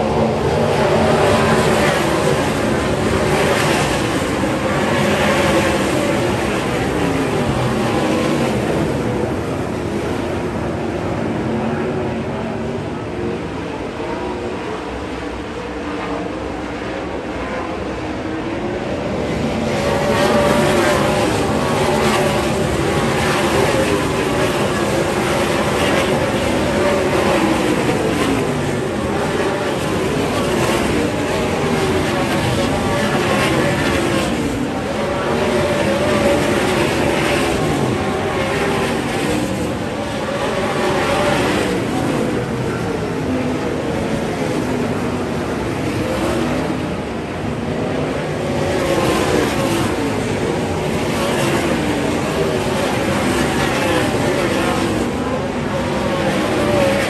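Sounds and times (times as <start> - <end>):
race car engines at full throttle: 0.0 - 57.0.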